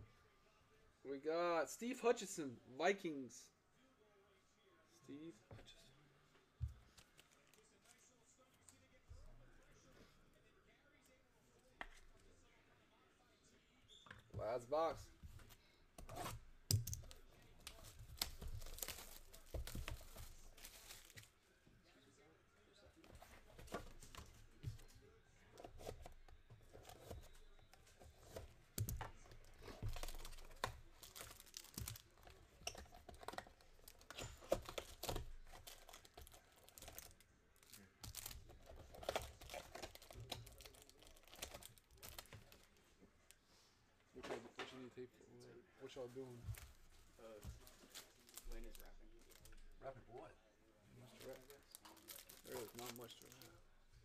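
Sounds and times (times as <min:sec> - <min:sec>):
wrappers torn and crinkled: 0:17.7 - 0:21.3, 0:29.8 - 0:32.4, 0:33.8 - 0:42.7, 0:51.1 - 0:53.5.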